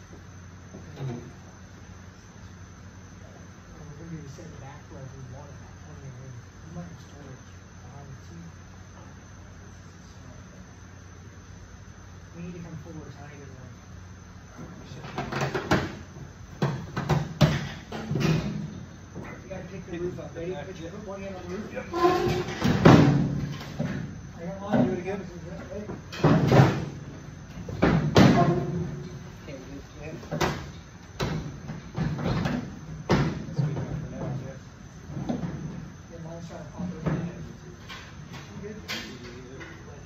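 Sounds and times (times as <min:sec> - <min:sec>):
sharp clunks and knocks: 0:16.6 - 0:19.4, 0:30.3 - 0:34.4.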